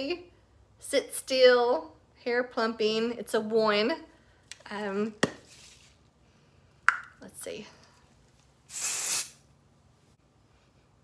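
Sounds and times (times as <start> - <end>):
aerosol hairspray hiss: 8.7 - 9.4.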